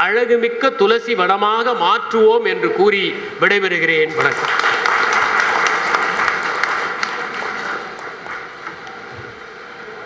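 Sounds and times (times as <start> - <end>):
audience applauding: 4.2 - 9.2.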